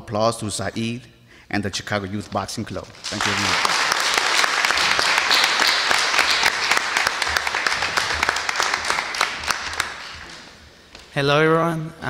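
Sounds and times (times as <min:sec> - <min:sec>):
audience applauding: 0:03.0 - 0:10.8.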